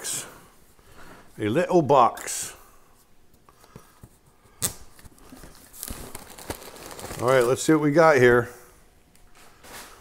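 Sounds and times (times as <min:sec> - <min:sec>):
cardboard crackling and rustling: 0:05.2 - 0:07.7.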